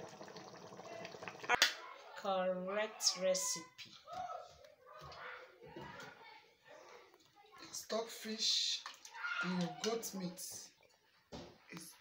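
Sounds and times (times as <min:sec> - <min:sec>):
soup bubbling in a pot: 0:00.0 - 0:01.6.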